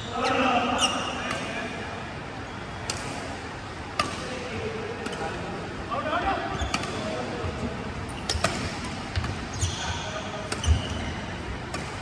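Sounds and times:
racket hitting shuttlecock: 4.0s - 4.3s, 8.2s - 9.5s, 11.7s - 12.0s
shoe squeak: 6.5s - 7.0s, 9.5s - 11.2s.

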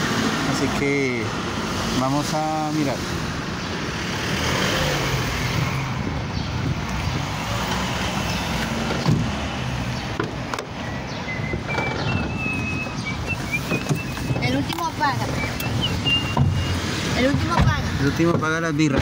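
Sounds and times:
street traffic: 0.0s - 19.0s.

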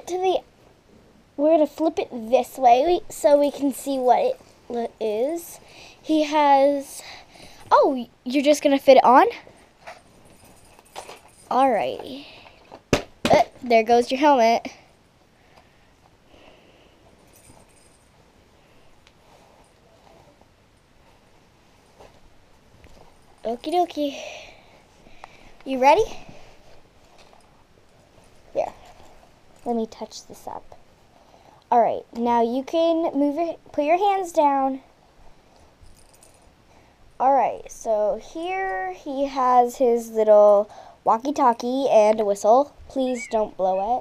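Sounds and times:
faint rustling and handling: 0.0s - 44.0s.

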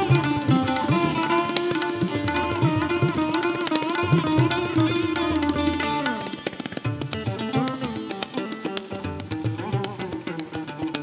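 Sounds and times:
tabla strokes: 0.0s - 11.0s.

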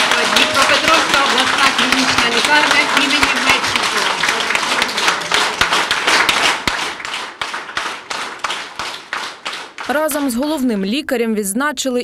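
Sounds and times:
people clapping: 0.0s - 10.9s.

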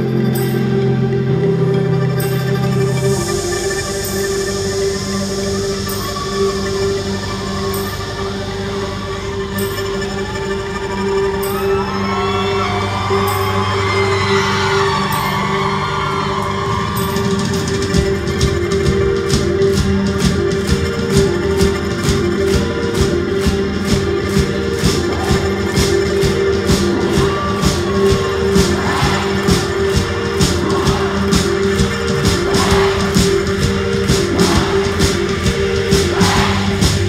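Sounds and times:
keyboard drone: 0.0s - 37.0s
sustained bass notes: 0.0s - 37.0s
fast high percussion pattern: 17.2s - 37.0s.

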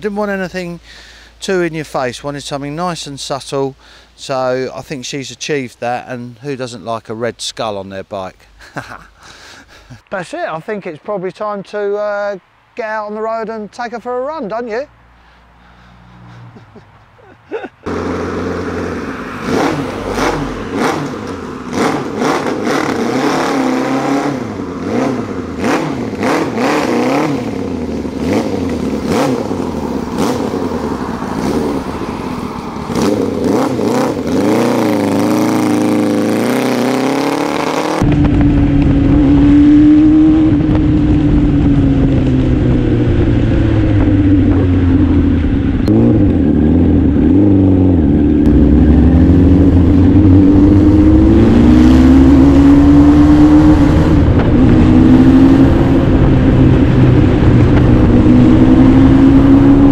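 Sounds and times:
motorcycle engine revving: 17.8s - 59.9s
low rumble: 38.0s - 59.9s.

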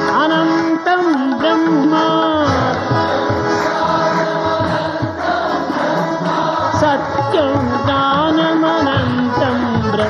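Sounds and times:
chorus singing held notes: 0.0s - 10.0s.

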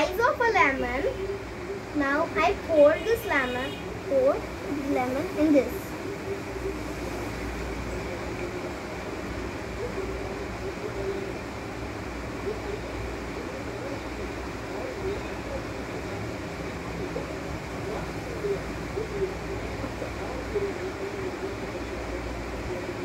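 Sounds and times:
distant indistinct voices: 0.0s - 23.0s.

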